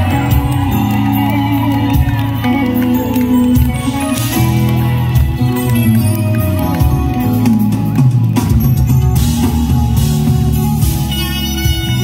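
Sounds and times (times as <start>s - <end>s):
bass guitar: 0.0s - 12.0s
drum kit: 0.0s - 12.0s
keyboard: 0.0s - 12.0s
soprano saxophone: 11.0s - 12.0s.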